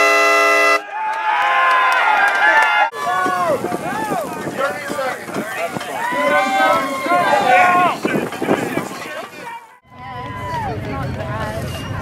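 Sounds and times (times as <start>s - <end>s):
horn blast: 0.0s - 0.8s
people's voices and shouts: 0.8s - 12.0s.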